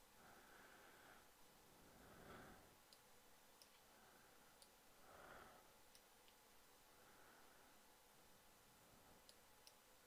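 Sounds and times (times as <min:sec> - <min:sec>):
faint computer mouse clicks: 0:02.9 - 0:03.9, 0:05.9 - 0:06.5, 0:09.2 - 0:09.8.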